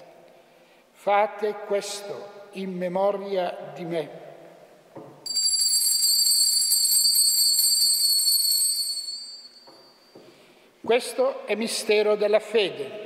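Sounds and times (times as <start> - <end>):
altar bells ringing: 5.3 - 10.4.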